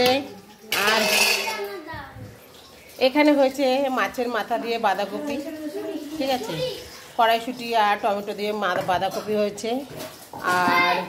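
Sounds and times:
metal cookware scraping and clattering: 0.0 - 1.8, 6.1 - 11.0.

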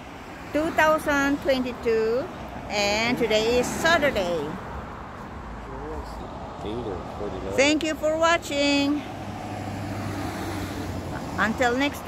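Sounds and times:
vehicle driving past: 9.0 - 11.7.

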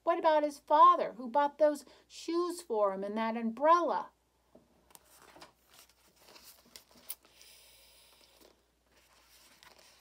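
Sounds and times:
book pages rustling: 4.9 - 10.0.

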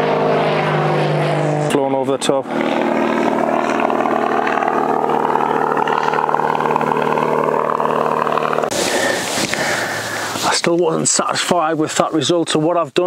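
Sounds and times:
propeller aircraft engine drone: 0.0 - 12.1
steady hiss: 8.7 - 12.2.

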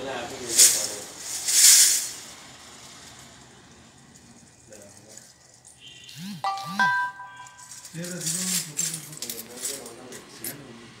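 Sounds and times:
people talking: 0.0 - 1.1, 7.9 - 10.8
metallic clinks and jingling: 6.5 - 10.0.

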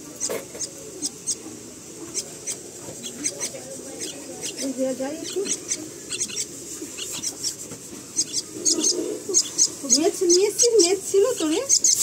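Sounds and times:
chicks chirping: 0.0 - 12.0.

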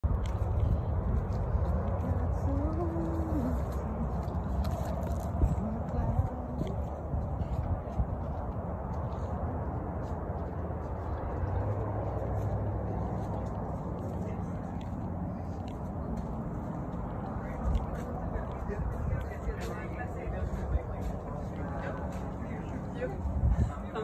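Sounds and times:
low rumble on microphone: 0.0 - 24.0
faint distant voices: 0.3 - 24.0.

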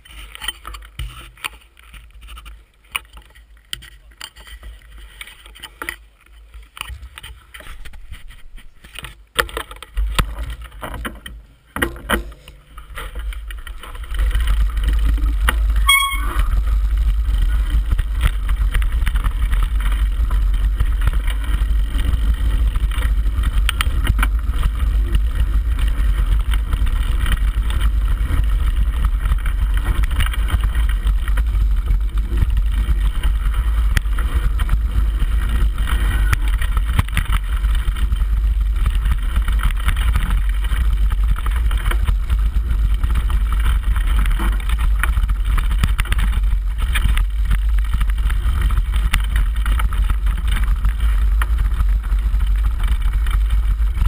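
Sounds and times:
bike tyres rattling on gravel: 0.0 - 54.0
high-pitched tone: 15.8 - 16.6.

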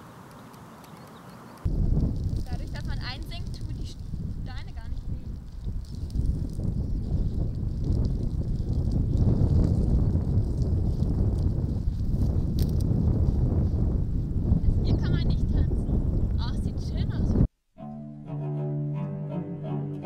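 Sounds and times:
wind buffeting microphone: 1.6 - 17.5.

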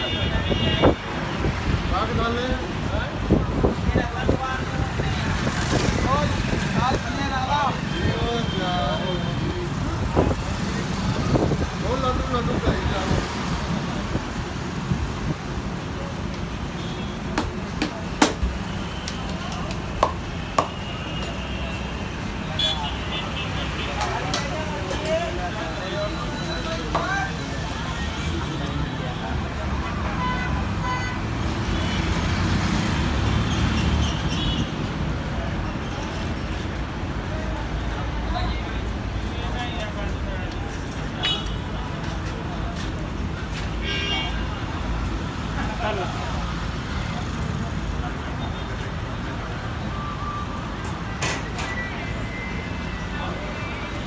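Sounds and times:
rumble of passing vehicles: 0.0 - 54.0
people talking: 21.3 - 30.0.

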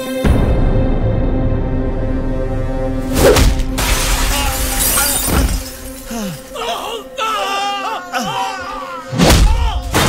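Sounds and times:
glass breaking: 3.8 - 6.1.

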